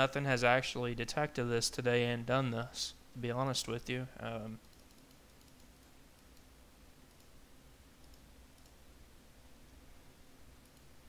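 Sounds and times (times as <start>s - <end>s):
computer mouse clicks: 4.6s - 7.4s, 8.0s - 8.8s, 10.6s - 11.0s.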